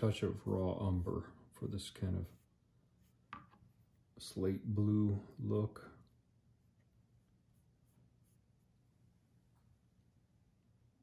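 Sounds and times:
paintbrush strokes on wood: 0.0s - 4.4s, 7.2s - 9.8s
low room hum: 0.0s - 11.0s.

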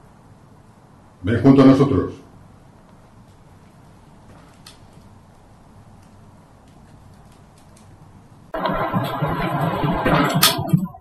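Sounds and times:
wood fire crackling: 2.9s - 10.6s.

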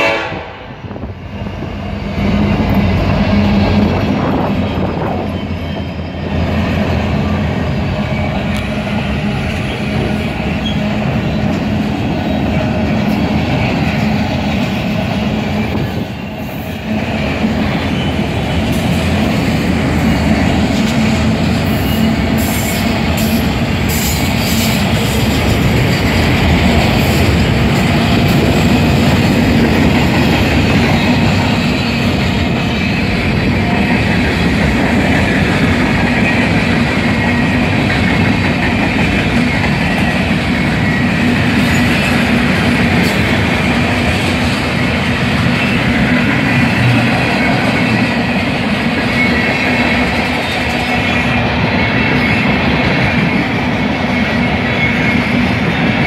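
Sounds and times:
train cars clicking and clanking: 0.0s - 56.0s
train wheels rumbling on rails: 0.0s - 56.0s.

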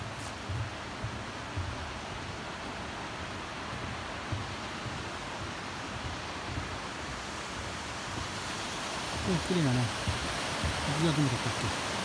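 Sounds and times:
soft footsteps on bridge: 0.0s - 12.0s
stream and waterfall rushing: 0.0s - 12.0s.

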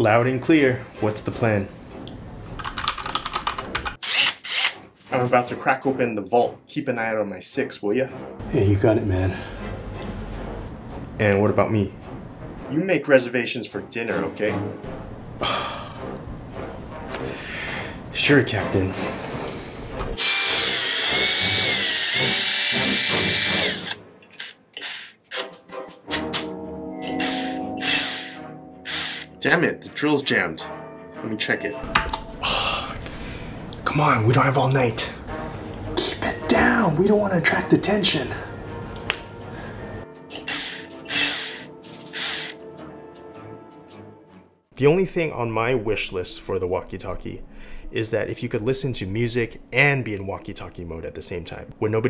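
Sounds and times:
rapid typing on keyboard: 2.6s - 4.0s
cordless drill running: 4.0s - 4.8s, 20.2s - 25.0s.

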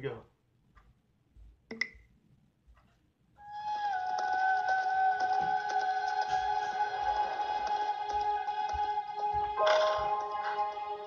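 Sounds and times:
trailer music from tv: 3.4s - 11.0s.

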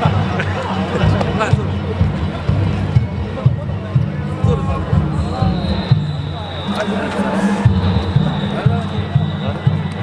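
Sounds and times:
high steady tone: 4.8s - 9.9s.

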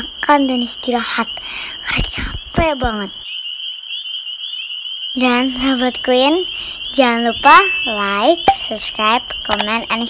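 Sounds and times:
high-pitched insect trill: 0.0s - 10.0s.

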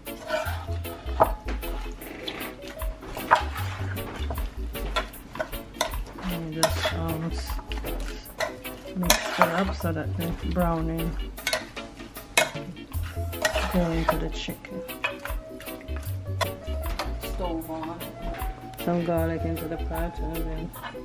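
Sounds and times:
spoon clinking against pot: 0.0s - 9.9s, 11.2s - 17.3s
spoon stirring food in metal pot: 0.0s - 18.8s.

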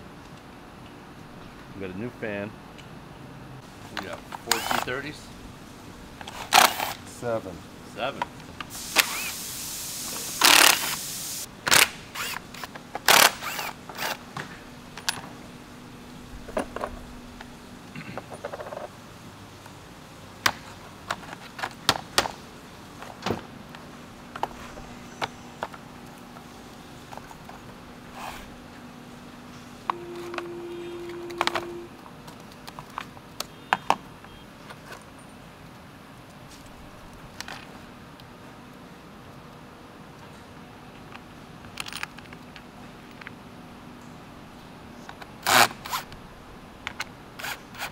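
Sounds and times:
cordless power driver whirring: 8.9s - 9.4s, 12.1s - 14.2s.

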